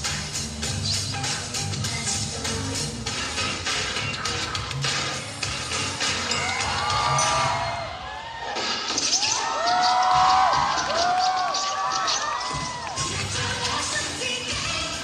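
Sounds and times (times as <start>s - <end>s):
dance music over loudspeakers: 0.0s - 15.0s
audience screaming and cheering: 6.0s - 15.0s.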